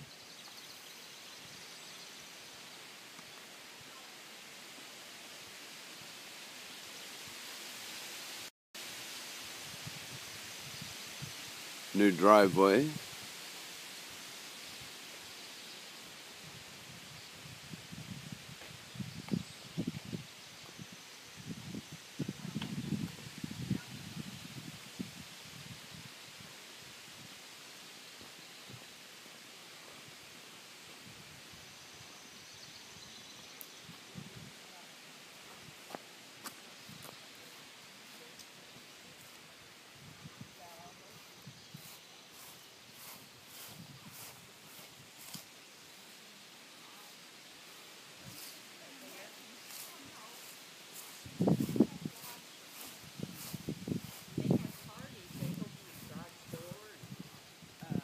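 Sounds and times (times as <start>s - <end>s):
steady hiss: 0.0s - 58.0s
muffled bumps and rustles: 53.1s - 58.0s.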